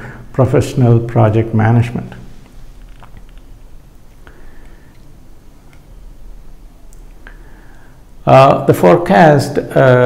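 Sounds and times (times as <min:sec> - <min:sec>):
faint clicks: 0:02.4 - 0:05.9.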